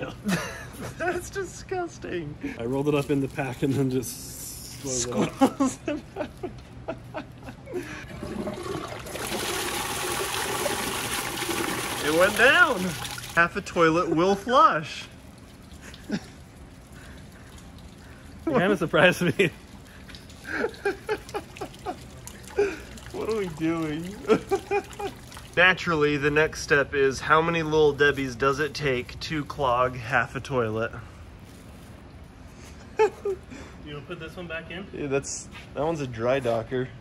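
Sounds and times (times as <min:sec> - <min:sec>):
low steady background noise: 0:00.0 - 0:37.0.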